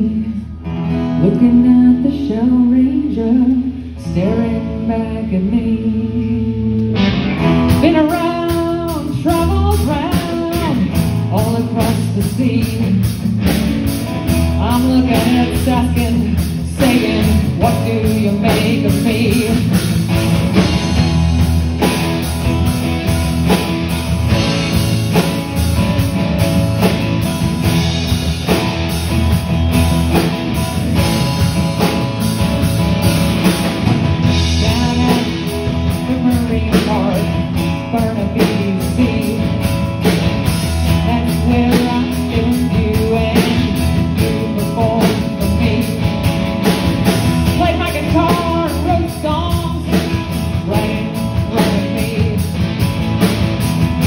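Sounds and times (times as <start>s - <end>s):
live rock band playing: 0.0s - 54.0s.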